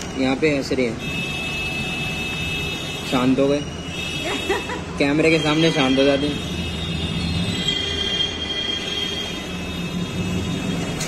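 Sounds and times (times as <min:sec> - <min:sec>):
machine high-pitched whine: 0:06.6 - 0:11.0.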